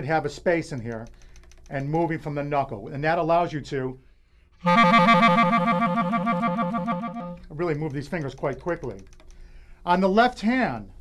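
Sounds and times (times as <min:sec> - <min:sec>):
clarinet trill: 0:04.6 - 0:07.5.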